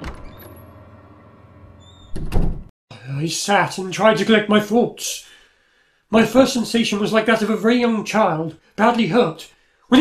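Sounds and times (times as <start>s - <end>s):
door slamming shut: 0.0s - 0.8s, 1.8s - 2.7s.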